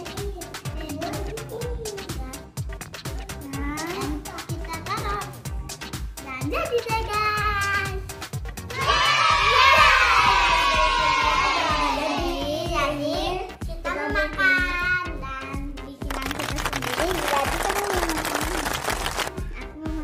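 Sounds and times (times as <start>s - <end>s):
music with a steady beat: 0.0s - 20.0s
girls shrieking and cheering: 8.7s - 12.2s.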